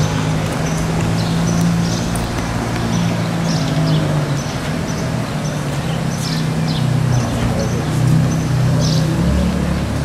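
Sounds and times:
vehicle engine humming: 0.0 - 10.0.

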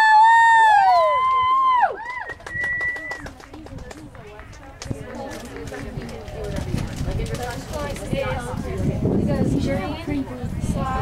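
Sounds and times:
spectators whooping and cheering: 0.0 - 3.3.

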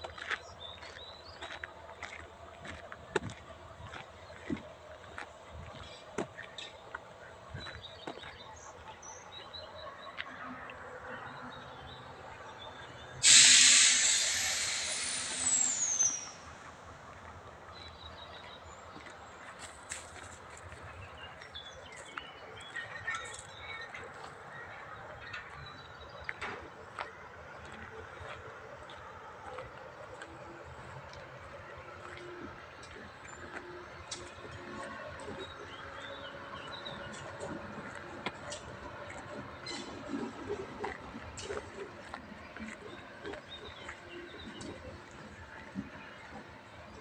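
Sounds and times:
compressed air venting: 13.2 - 16.5.

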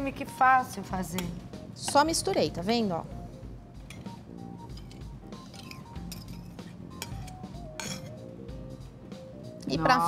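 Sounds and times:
soft background music: 0.0 - 10.0
spoon clinking and scraping tin: 3.9 - 8.2.

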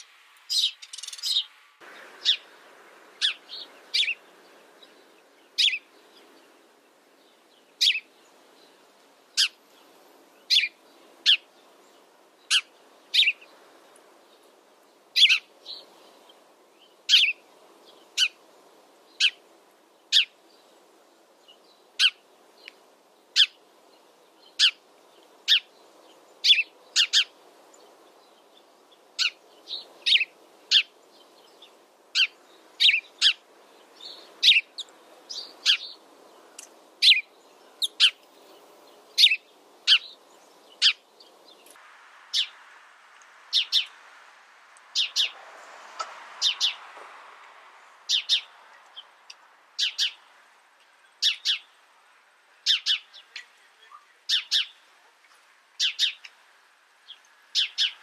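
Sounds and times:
sparrow chirping: 0.0 - 42.6, 43.5 - 44.0, 45.0 - 45.4, 46.4 - 46.9, 48.0 - 51.8, 52.6 - 54.9, 55.8 - 56.4, 57.0 - 58.0
faint background noise: 0.0 - 58.0.

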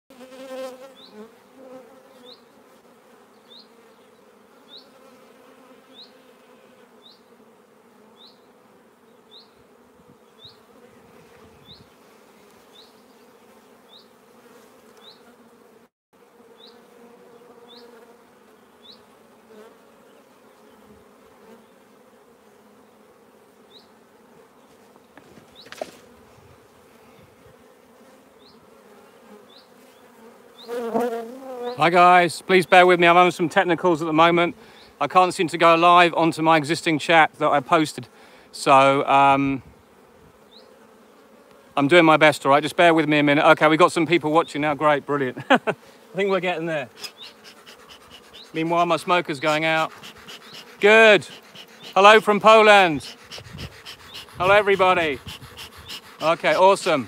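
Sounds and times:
honeybees humming: 0.1 - 57.0.

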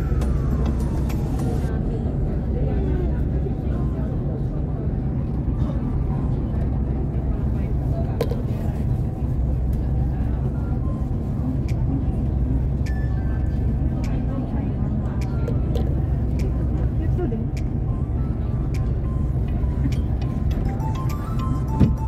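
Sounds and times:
road rumble inside vehicle: 0.0 - 22.0.

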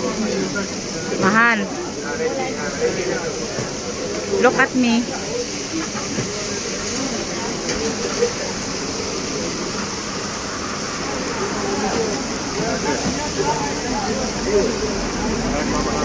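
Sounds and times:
diners chattering: 0.0 - 16.0.

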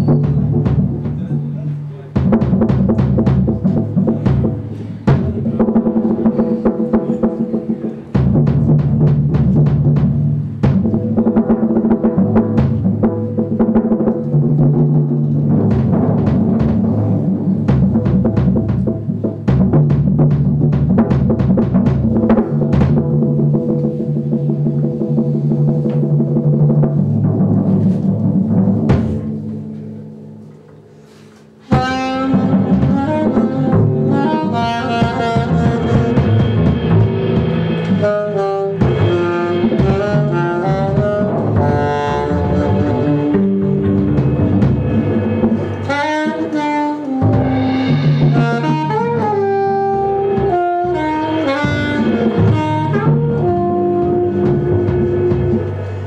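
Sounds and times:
double bass: 0.0 - 31.1, 31.7 - 56.0
drum kit playing: 0.0 - 56.0
alto saxophone: 31.0 - 56.0.

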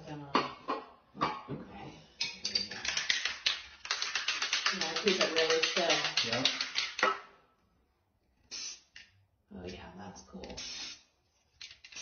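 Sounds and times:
spray paint can hissing: 8.5 - 9.0, 10.6 - 11.1, 11.7 - 12.0.

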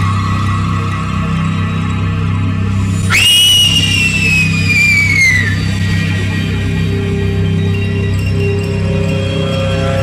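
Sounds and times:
low droning music: 0.0 - 10.0
girl screaming: 3.1 - 5.6.

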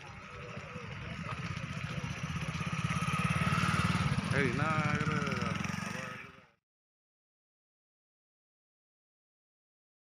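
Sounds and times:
motorcycle engine running: 0.0 - 6.6.

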